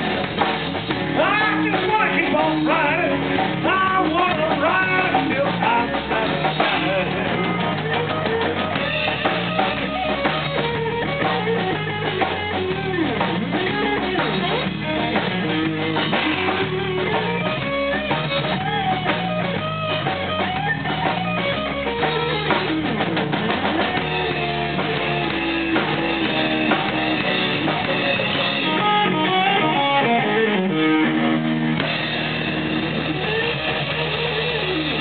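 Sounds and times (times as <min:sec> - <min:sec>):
blues-rock band playing: 0:00.0 - 0:35.0
lead guitar bending notes: 0:00.0 - 0:35.0.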